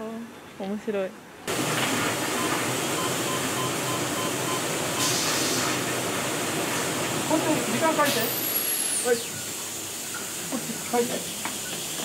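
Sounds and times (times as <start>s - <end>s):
machinery hissing noise: 1.5s - 12.0s
short electronic beeps: 2.4s - 5.1s.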